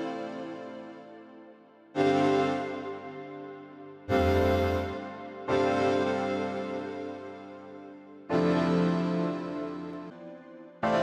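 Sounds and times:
deep bass note: 4.1 - 5.0
electric piano chords: 4.1 - 5.1.

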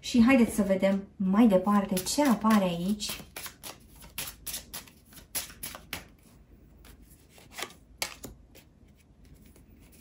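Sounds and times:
cards being shuffled: 1.9 - 10.0.

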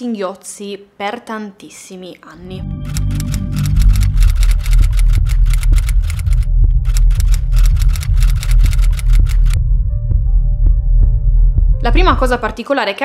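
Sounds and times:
music with deep bass: 2.4 - 12.5
typewriter keys clacking: 2.9 - 9.6.

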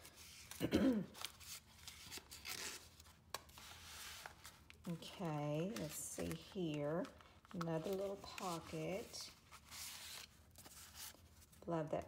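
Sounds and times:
paper rustling and rubbing: 0.0 - 11.6.

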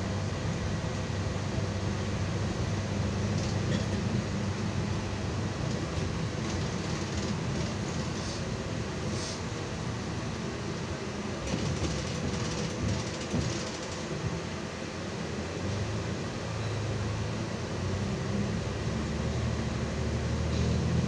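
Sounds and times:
bus drivetrain hum: 0.0 - 21.0
road noise: 0.0 - 21.0.

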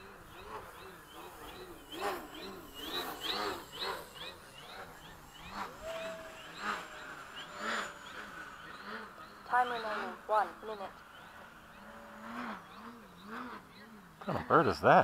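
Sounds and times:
bird chirping: 0.0 - 15.0.

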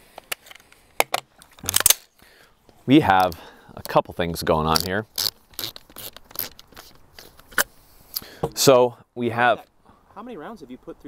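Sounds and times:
metallic clicks and scrapes: 4.7 - 8.3.

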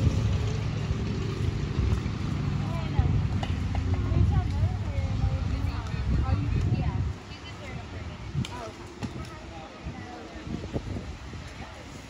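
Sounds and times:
spectators talking: 2.6 - 12.0.

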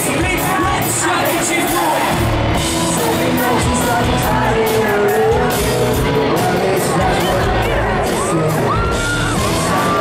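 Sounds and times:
high voice singing: 0.0 - 9.2
pop-punk band playing: 0.0 - 10.0.

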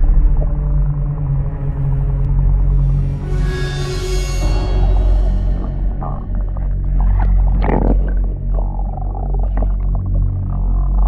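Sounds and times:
dark ambient music: 0.0 - 11.0.

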